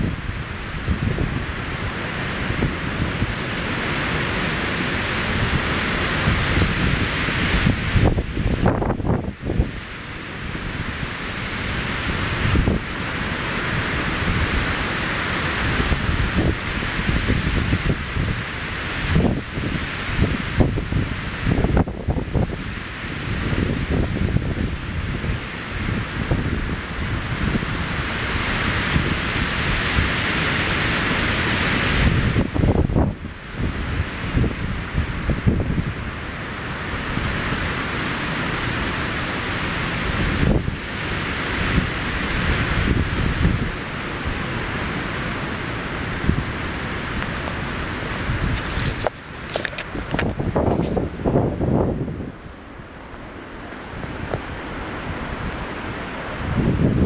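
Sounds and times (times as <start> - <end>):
wind buffeting microphone: 0.0 - 57.0
wind rushing through treetops: 0.0 - 57.0.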